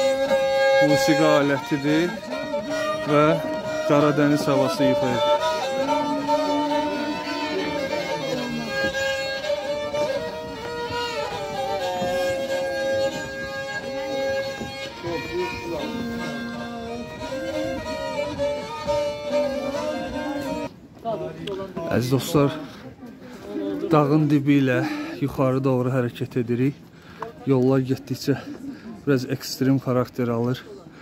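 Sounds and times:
bowed folk fiddle playing: 0.0s - 31.0s.

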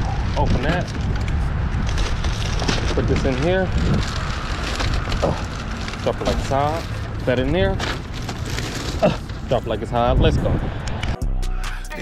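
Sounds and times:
plastic bags rustling: 0.0s - 10.2s
wind rumbling on microphone: 0.0s - 11.2s.

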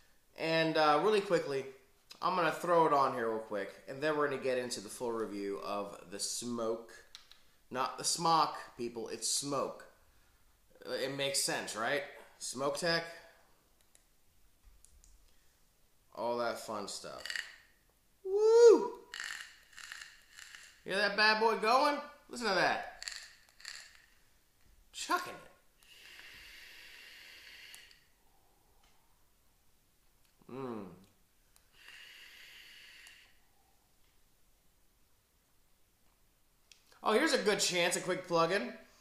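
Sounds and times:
whistling hiss of vape draw: 25.8s - 28.1s, 31.7s - 33.5s.

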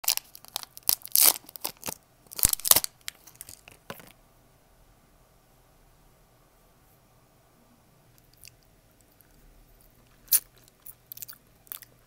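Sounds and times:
wrapper crinkling and tearing: 0.0s - 3.8s.

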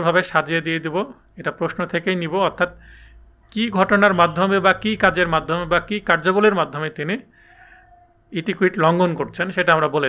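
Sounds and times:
man lecturing: 0.0s - 2.9s, 3.5s - 7.3s, 8.4s - 10.0s.

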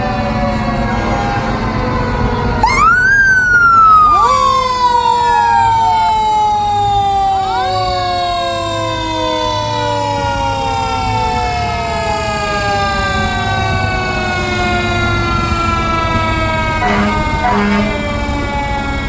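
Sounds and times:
fire truck sirens wailing: 0.0s - 19.0s
truck engines rumbling: 0.0s - 19.0s.

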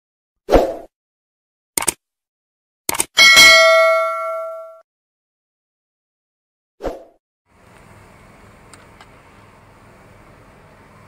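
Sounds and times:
bright bell ding: 3.2s - 4.8s.

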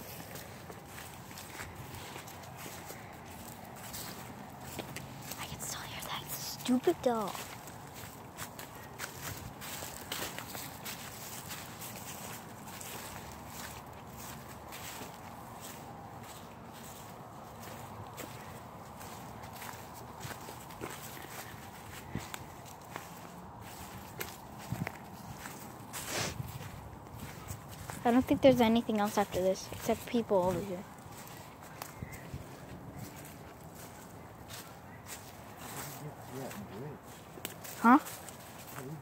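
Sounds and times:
footsteps walking: 0.0s - 39.0s.

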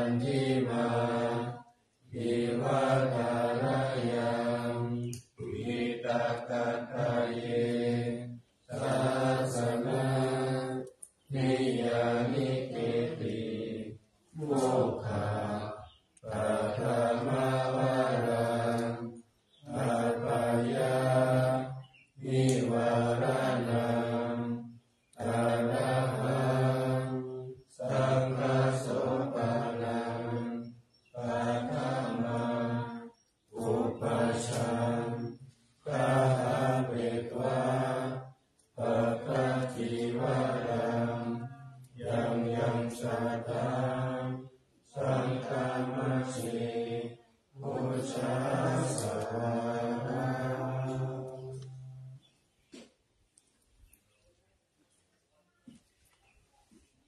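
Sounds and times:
men chanting: 0.0s - 52.1s.

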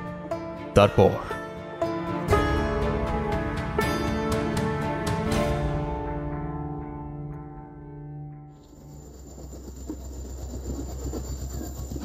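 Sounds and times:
train rumbling: 8.6s - 12.0s.

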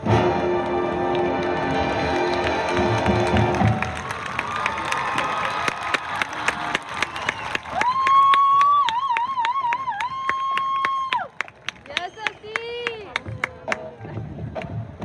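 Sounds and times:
crowd cheering and clapping: 0.2s - 14.8s.

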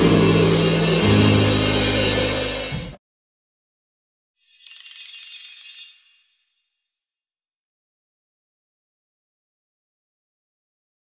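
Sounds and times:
live church band music: 0.0s - 3.0s.

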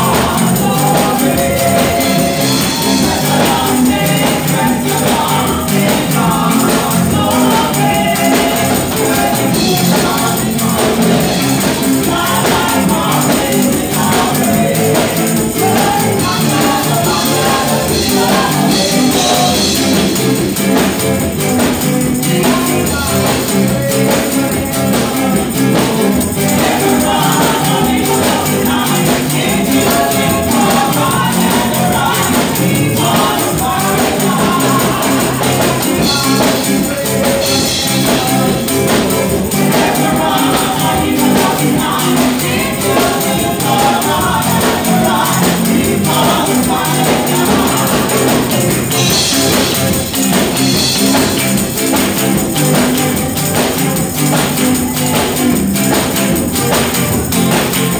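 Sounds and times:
women singing together: 0.0s - 56.1s
band accompaniment: 0.0s - 57.9s
drums and percussion: 0.0s - 57.9s
tambourine shaking: 0.0s - 57.9s.

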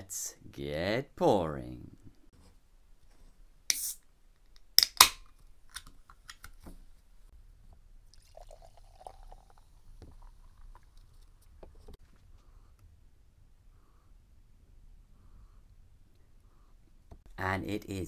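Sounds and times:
beer pouring into glass: 8.1s - 11.1s.

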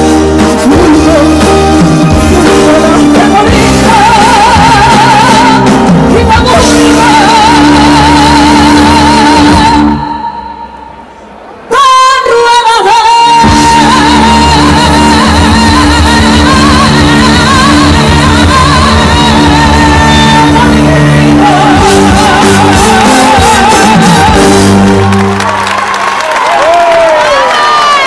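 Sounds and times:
live band playing: 0.0s - 28.0s
woman singing into a microphone: 0.5s - 10.8s, 11.7s - 25.0s
crowd shouting and cheering: 13.4s - 28.0s.

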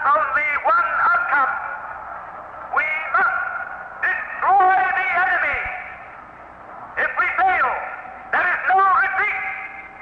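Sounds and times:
man speaking on old radio: 0.0s - 1.8s, 2.7s - 5.9s, 7.0s - 9.8s.

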